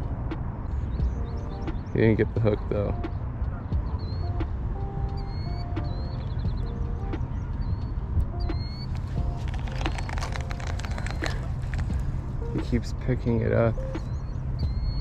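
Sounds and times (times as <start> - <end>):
wind rumble on microphone: 0.0 - 15.0
bird chirps and trill: 0.7 - 2.1, 3.1 - 12.7, 13.3 - 15.0
quick run of clicks: 8.8 - 12.7.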